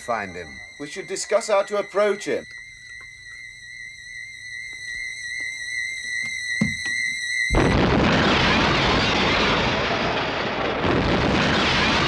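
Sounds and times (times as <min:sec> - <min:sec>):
high whistling tone: 0:00.0 - 0:07.7.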